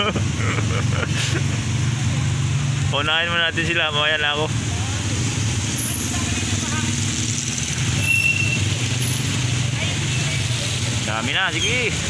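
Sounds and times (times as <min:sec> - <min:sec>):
motorcycle engines running at low speed: 0:00.0 - 0:12.0.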